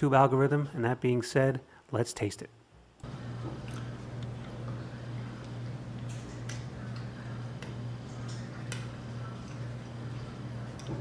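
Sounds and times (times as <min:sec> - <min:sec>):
steady low hum: 0:00.0 - 0:11.0
man chewing: 0:03.5 - 0:07.2.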